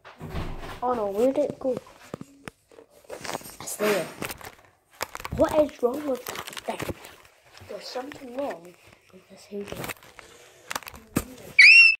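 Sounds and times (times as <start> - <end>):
high-pitched squeal: 11.6 - 12.0.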